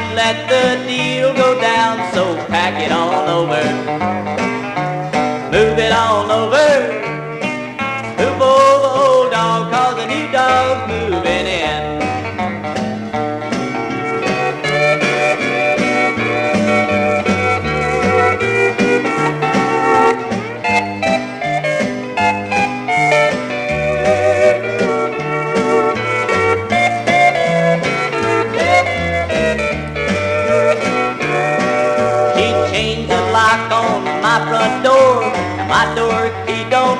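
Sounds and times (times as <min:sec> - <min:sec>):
lead guitar with bent notes: 0:00.0 - 0:36.9
walking bass line: 0:00.0 - 0:36.9.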